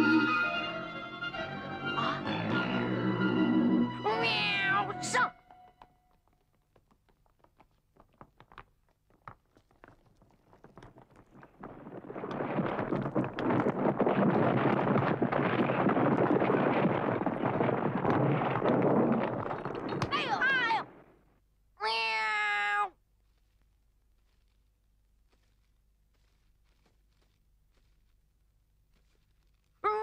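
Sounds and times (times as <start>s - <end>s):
cartoon rockfall clatter: 6.0s - 21.0s
cartoon cat wavering cry: 21.8s - 22.9s.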